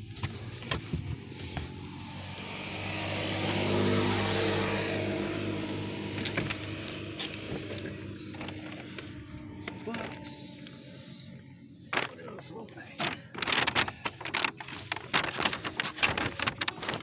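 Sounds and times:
car passing by: 1.4 - 7.7.

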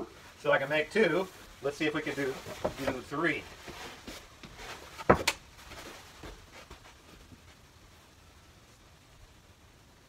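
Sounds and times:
faint taps and handling: 2.3 - 7.6
cardboard knocking on wooden ceiling: 4.4 - 5.4.

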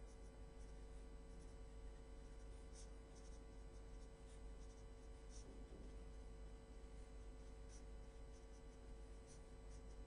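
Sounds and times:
pen scratching on paper: 0.0 - 1.6, 2.2 - 6.2, 6.9 - 10.0
steady hum: 0.0 - 10.0.

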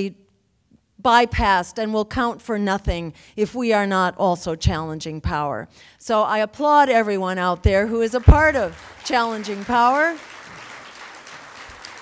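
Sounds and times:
audience applauding: 8.2 - 12.0.

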